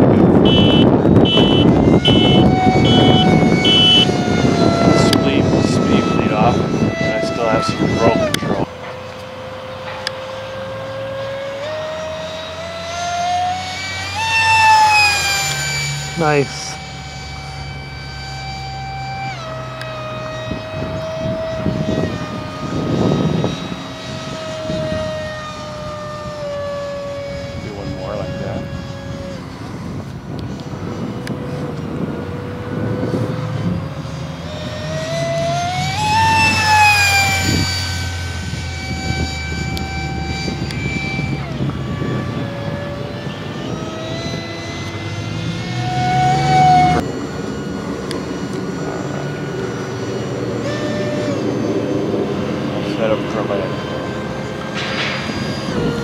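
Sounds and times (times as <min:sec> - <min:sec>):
model jet fan whining: 0:00.0 - 0:56.0
wind rumbling on microphone: 0:00.0 - 0:56.0.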